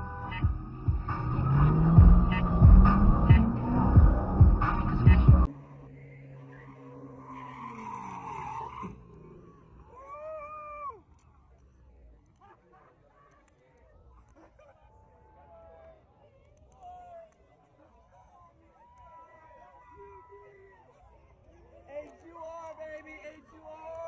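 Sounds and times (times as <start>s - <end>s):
background music with steady beat: 0.0s - 5.5s
faint car engine: 0.0s - 10.4s.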